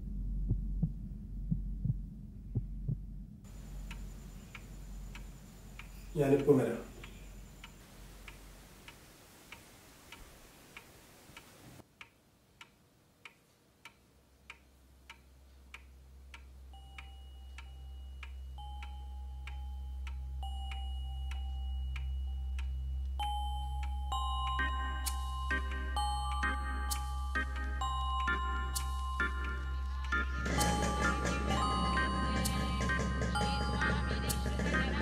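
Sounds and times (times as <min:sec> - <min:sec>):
low drone: 0:00.0 - 0:08.6
clock ticking: 0:03.5 - 0:35.0
held high musical notes: 0:16.8 - 0:35.0.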